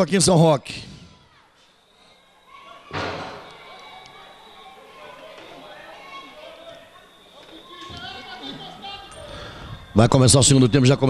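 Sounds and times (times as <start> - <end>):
faint outdoor background: 0.0 - 11.0
sudden thump: 2.9 - 3.5.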